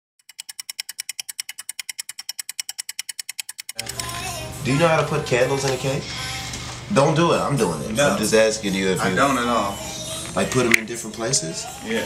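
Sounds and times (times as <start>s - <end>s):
rapid mechanical clicks: 0.2s - 4.1s.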